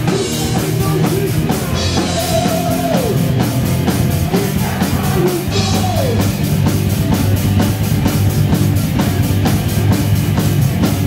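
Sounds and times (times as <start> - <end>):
fast drum beat: 0.0 - 11.0
heavy metal band playing live: 0.0 - 11.0.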